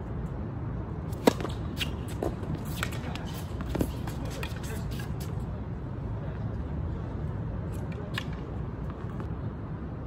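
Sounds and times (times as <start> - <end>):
distant city traffic rumble: 0.0 - 10.0.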